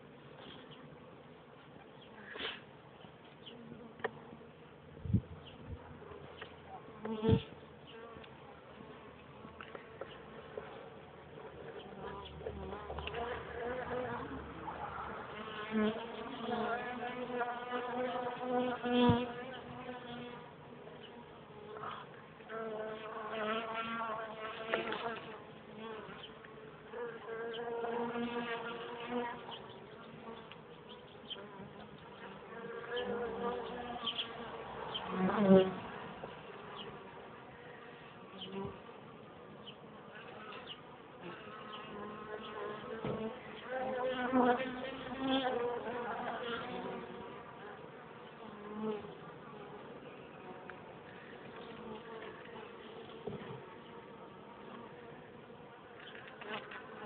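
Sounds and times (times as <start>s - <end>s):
honeybees buzzing: 3.4s - 57.0s.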